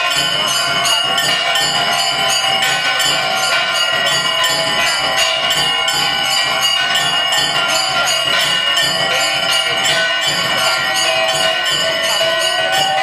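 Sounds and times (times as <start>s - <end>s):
bells ringing: 0.0s - 13.0s.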